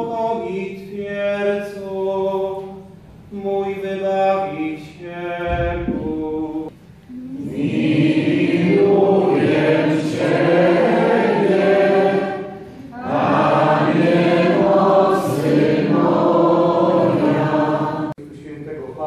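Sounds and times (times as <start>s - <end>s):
congregation singing: 0.0s - 18.2s.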